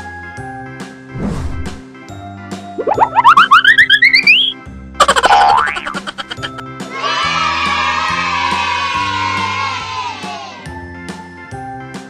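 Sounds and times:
rising run of notes: 2.8s - 6.6s
springy boing: 2.8s - 6.6s.

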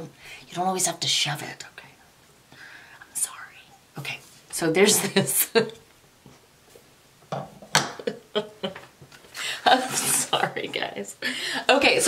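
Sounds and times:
woman laughing quietly: 7.8s - 10.6s.

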